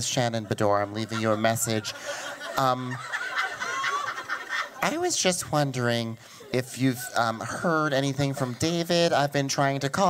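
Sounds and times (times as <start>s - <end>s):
audience laughing: 0.0s - 9.1s.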